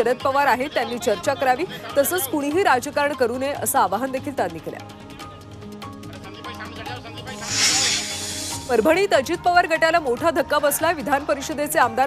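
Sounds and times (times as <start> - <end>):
news background music with beat: 7.2 - 10.4
hissing whoosh effect: 7.3 - 9.0.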